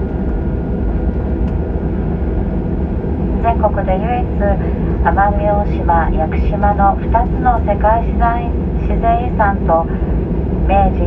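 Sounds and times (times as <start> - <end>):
airliner cabin engine rumble: 0.0 - 11.0.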